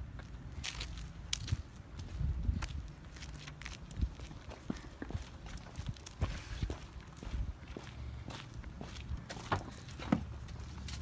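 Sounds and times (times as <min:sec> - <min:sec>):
footsteps on concrete: 0:00.1 - 0:11.0.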